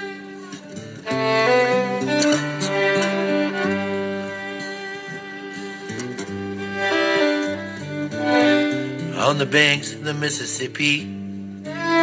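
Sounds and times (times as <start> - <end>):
slow acoustic guitar melody: 0.0 - 12.0.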